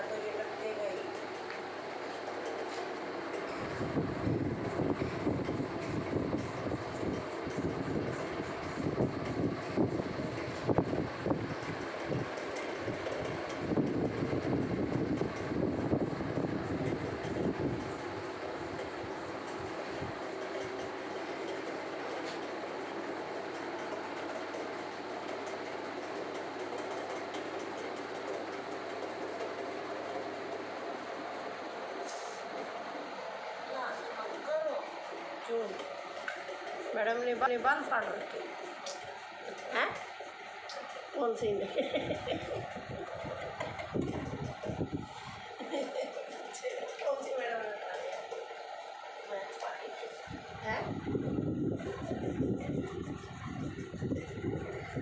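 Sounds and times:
steady hum: 0.0s - 55.0s.

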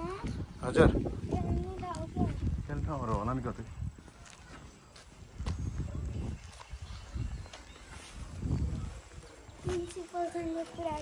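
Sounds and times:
footsteps on paved road: 0.0s - 11.0s.

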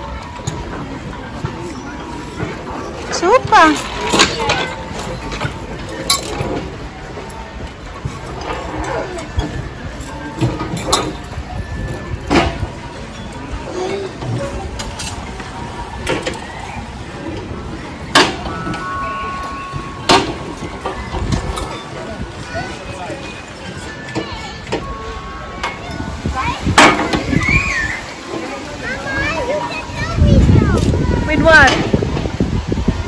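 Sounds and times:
children's voices: 18.5s - 33.0s.

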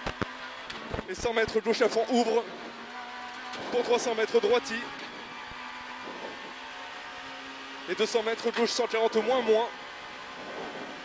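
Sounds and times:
rally car engine from inside cabin: 0.0s - 11.0s.

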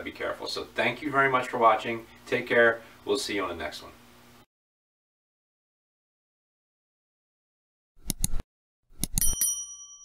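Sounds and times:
mouse clicks: 8.0s - 8.4s
notification bell ding: 9.2s - 10.0s.

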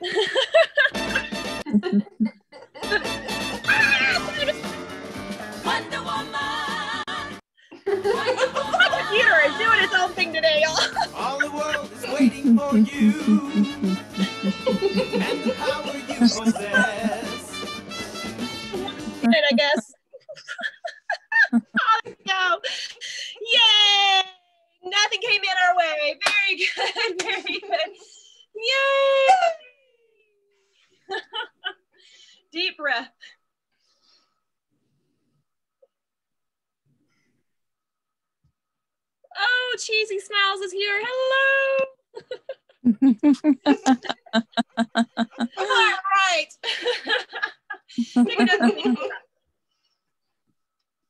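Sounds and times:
woman laughing loudly: 0.0s - 4.6s, 10.6s - 17.6s, 19.2s - 22.0s, 42.2s - 46.0s, 46.7s - 49.2s
woman howling woo: 3.6s - 4.5s
music from a computer: 11.0s - 19.2s.

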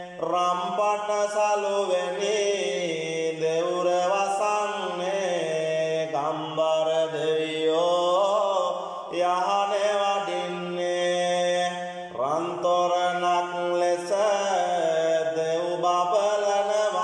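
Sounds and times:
man chanting devotional verses: 0.0s - 17.0s.

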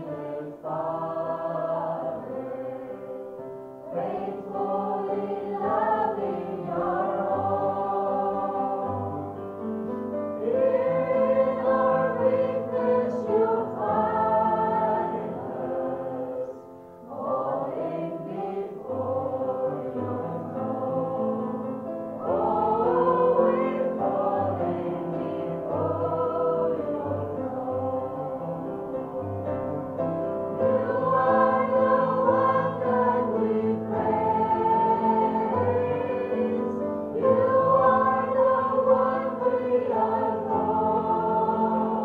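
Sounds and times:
women singing worship song: 0.0s - 3.3s, 3.9s - 9.3s, 10.4s - 28.8s, 30.6s - 42.0s.

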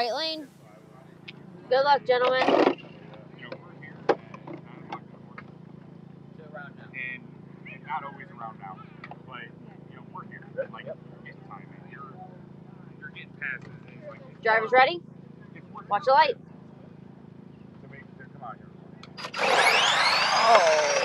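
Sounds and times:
faint voices talking: 0.0s - 19.2s
steady low hum: 0.0s - 21.0s.

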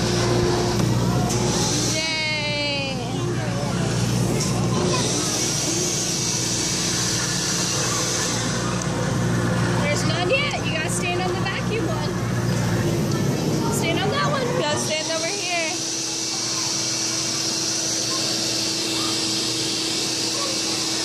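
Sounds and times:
blower hum and air hiss: 0.0s - 21.0s
children chattering: 0.0s - 21.0s.

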